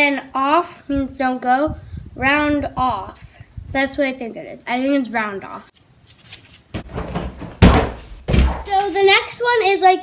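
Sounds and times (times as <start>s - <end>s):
thump landing on mat: 6.7s - 8.7s.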